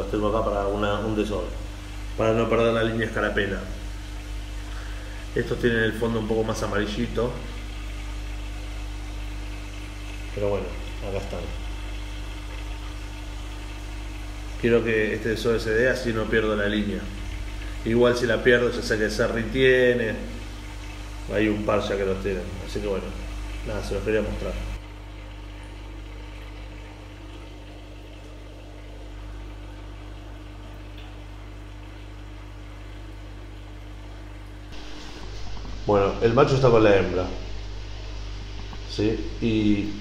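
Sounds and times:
aquarium equipment hum: 0:00.0 - 0:40.0.

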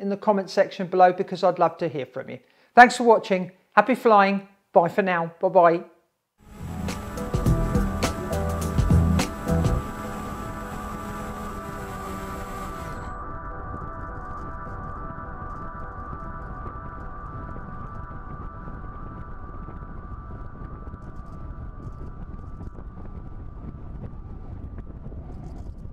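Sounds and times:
model airplane motor whine: 0:06.4 - 0:13.4
wind rushing over microphone: 0:16.6 - 0:25.9.

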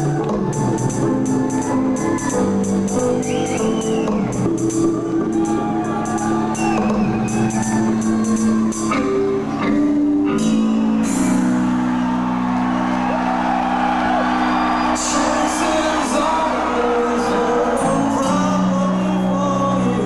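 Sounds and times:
heavy rock band playing: 0:00.0 - 0:19.0
person singing: 0:14.9 - 0:20.0.

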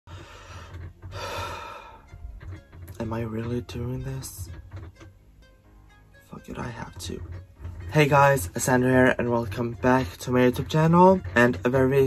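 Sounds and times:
man breathing deeply: 0:00.1 - 0:02.2.

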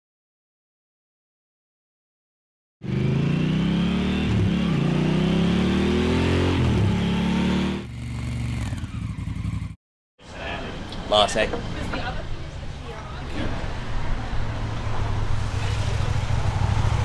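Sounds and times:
motorcycle engine accelerating: 0:02.8 - 0:09.8, 0:14.2 - 0:17.0.

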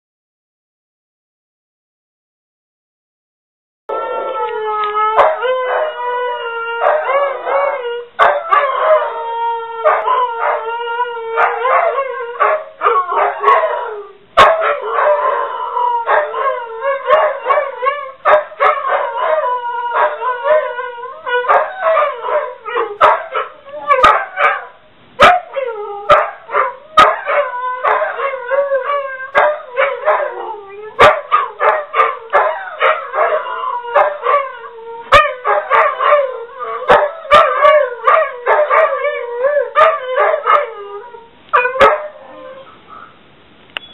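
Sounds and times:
dogs howling: 0:03.9 - 0:43.1.

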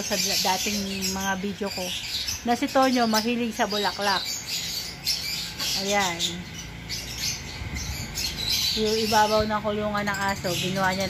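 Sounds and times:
birds chirping and squawking: 0:00.0 - 0:11.0.

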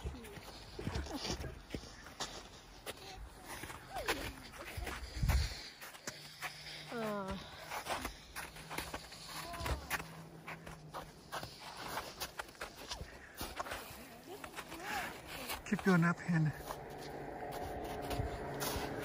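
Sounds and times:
footsteps in packed snow: 0:00.0 - 0:19.0.

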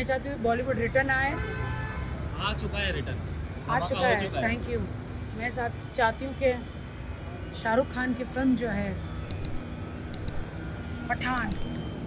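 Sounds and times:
faint high ticks: 0:09.3 - 0:10.5.

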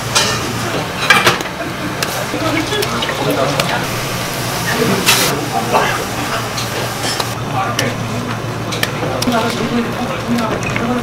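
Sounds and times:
broth boiling: 0:00.0 - 0:11.0.

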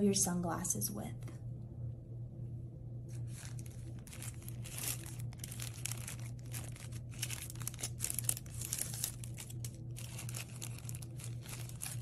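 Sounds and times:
wrapping crinkling and rustling: 0:03.1 - 0:12.0.

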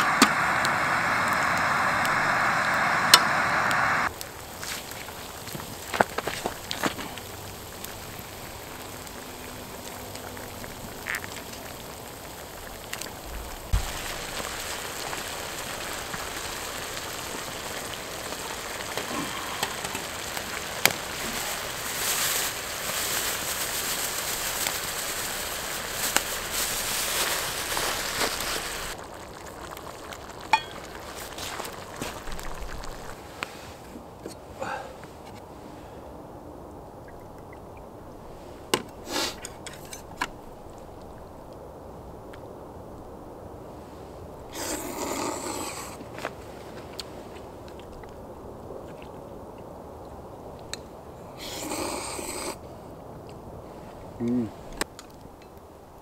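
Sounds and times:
stew sizzling in a pan: 0:00.0 - 0:33.7, 0:44.5 - 0:46.0, 0:51.4 - 0:52.6.

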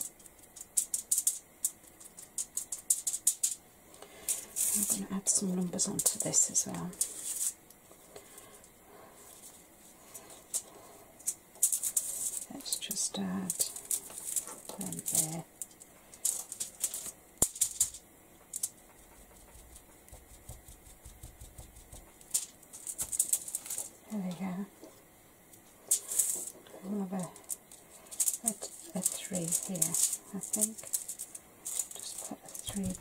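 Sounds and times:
sponge dabbing ink on card: 0:19.1 - 0:22.1.

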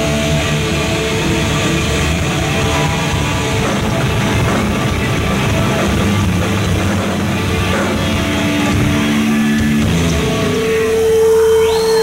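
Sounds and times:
thrash metal band playing: 0:00.0 - 0:11.8.

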